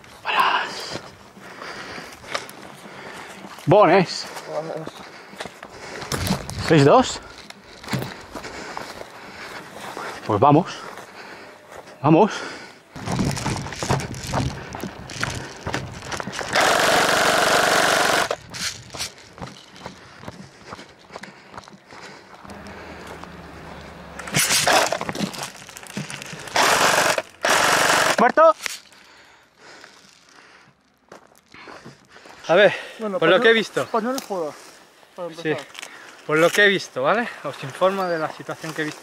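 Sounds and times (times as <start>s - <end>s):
footsteps: 0.0s - 12.0s, 12.9s - 27.4s, 28.5s - 32.6s
brush rustling: 12.9s - 21.0s, 22.1s - 29.1s, 33.1s - 39.0s
airsoft gun full-auto bursts: 16.4s - 18.4s, 26.5s - 28.3s.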